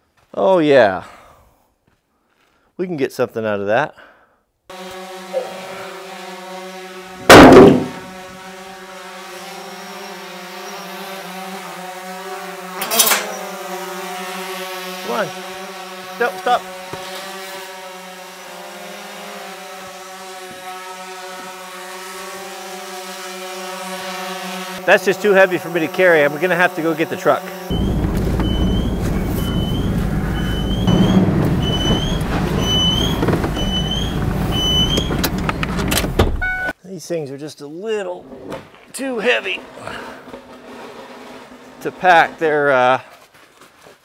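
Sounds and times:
drone propellers humming: 0:05.2 - 0:08.4, 0:24.4 - 0:36.4
heavy thud: 0:07.3 - 0:08.1, 0:27.7 - 0:34.4
sharp knock: 0:07.3 - 0:08.1.

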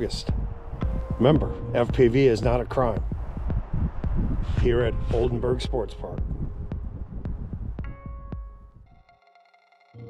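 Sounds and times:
low outdoor rumble: 0:00.0 - 0:07.9.

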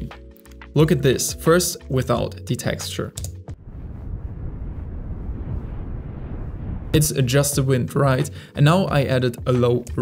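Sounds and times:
wind rushing: 0:03.6 - 0:07.4.

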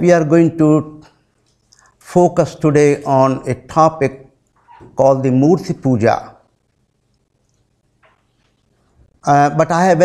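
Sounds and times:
man speaking: 0:00.0 - 0:01.1, 0:02.0 - 0:04.3, 0:05.0 - 0:06.4, 0:09.2 - 0:10.0.

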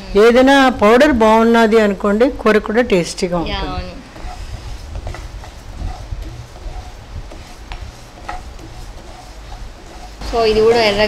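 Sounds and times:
spoon stirring seeds in pan: 0:04.0 - 0:11.0.

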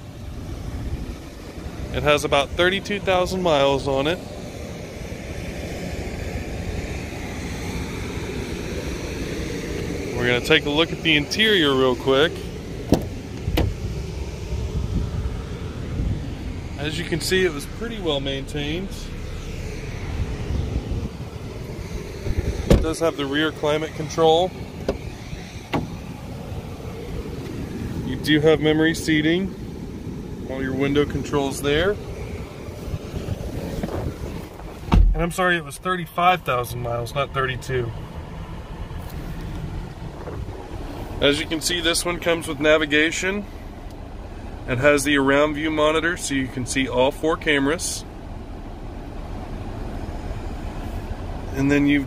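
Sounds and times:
wind buffeting microphone: 0:00.0 - 0:35.4, 0:38.1 - 0:41.8.

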